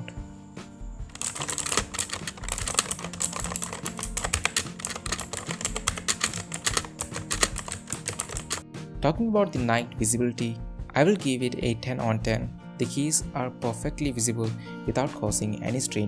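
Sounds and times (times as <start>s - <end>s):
mechanical keyboard typing: 1.1s - 8.6s.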